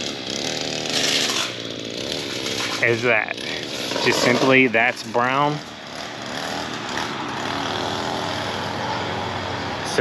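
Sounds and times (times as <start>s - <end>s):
small gasoline engine running: 0.0s - 10.0s.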